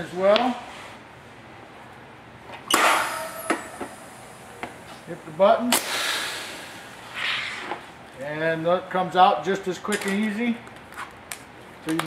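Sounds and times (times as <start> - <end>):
press air hiss: 5.7 - 7.6.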